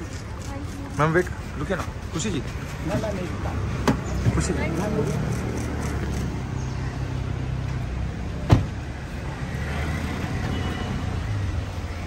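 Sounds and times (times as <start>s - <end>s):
street traffic: 0.0s - 12.0s
car door slamming: 8.4s - 8.8s.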